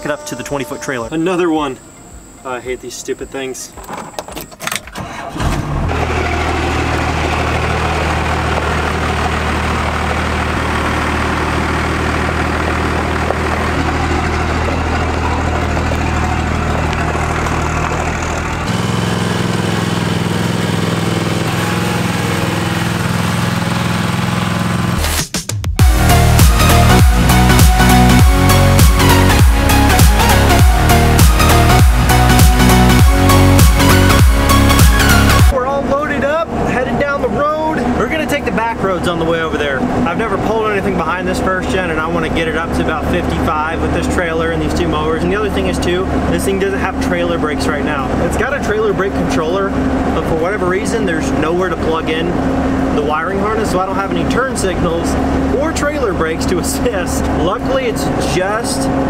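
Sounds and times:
man talking: 0.0s - 1.8s, 2.4s - 3.8s, 35.5s - 59.0s
diesel engine idling: 0.0s - 3.7s, 5.0s - 25.0s, 25.8s - 59.0s
mower engine running: 5.0s - 25.2s, 25.8s - 59.0s
electronic dance music: 24.9s - 35.6s.

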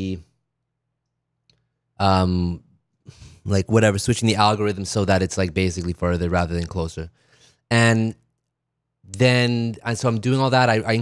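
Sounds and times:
man speaking: 0.0s - 0.3s, 2.0s - 7.1s, 7.7s - 8.2s, 9.1s - 11.0s.

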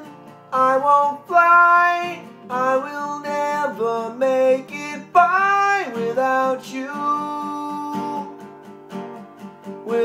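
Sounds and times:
man singing slow melody: 0.0s - 8.4s, 9.8s - 10.0s
strummed acoustic guitar: 0.0s - 10.0s.

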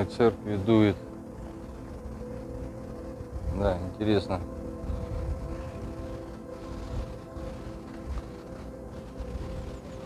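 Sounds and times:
organ drone: 0.0s - 10.0s
wind rumbling on microphone: 0.0s - 10.0s.

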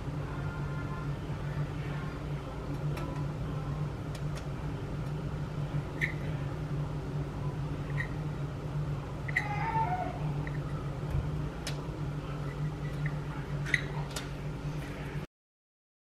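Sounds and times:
steady low hum: 0.0s - 15.3s.

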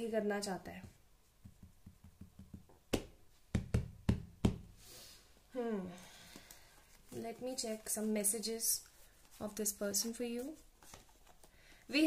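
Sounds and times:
hand knocking on deck of cards: 0.8s - 4.7s.

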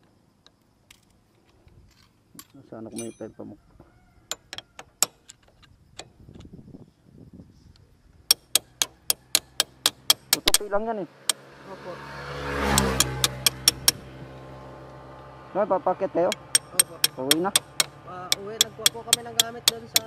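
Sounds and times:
metallic clicks of hand tools: 8.3s - 11.4s, 12.7s - 14.0s, 16.3s - 20.0s
passing vehicle engine: 8.6s - 20.0s.

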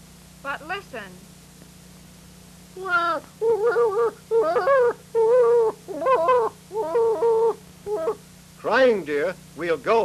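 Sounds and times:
baby crying: 2.8s - 8.2s.

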